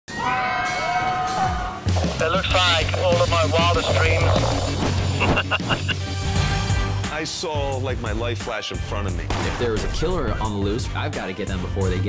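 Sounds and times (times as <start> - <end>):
voices screaming: 0.1 - 4.5.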